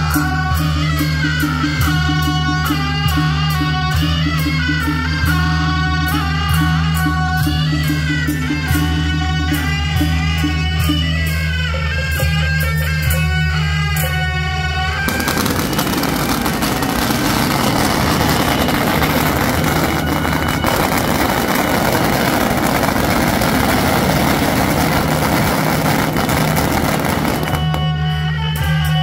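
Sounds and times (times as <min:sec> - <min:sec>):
music: 0:00.0 - 0:29.0
firecrackers crackling: 0:15.1 - 0:28.3.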